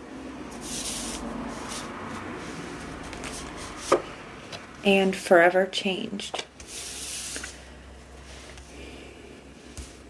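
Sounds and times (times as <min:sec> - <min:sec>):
cards shuffled and slid by hand: 0:00.5 - 0:04.7, 0:06.5 - 0:07.6, 0:09.6 - 0:10.0.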